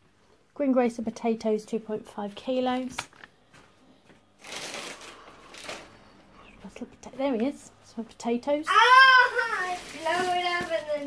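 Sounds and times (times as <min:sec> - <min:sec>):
plastic bags rustling: 0:04.3 - 0:06.3, 0:08.7 - 0:11.0.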